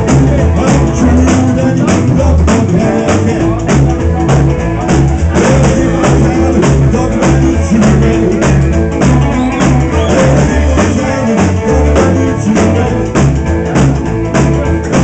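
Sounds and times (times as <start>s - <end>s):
rockabilly band playing: 0.0s - 15.0s.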